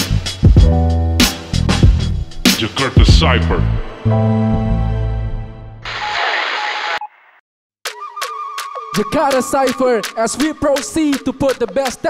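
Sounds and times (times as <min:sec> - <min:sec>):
static hiss glitch: 0:05.8 - 0:07.1.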